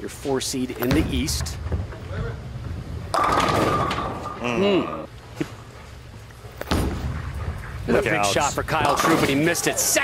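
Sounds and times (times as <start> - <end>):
bowling pins crashing: 0.9 - 4.4
bowling ball rolling: 0.9 - 4.6.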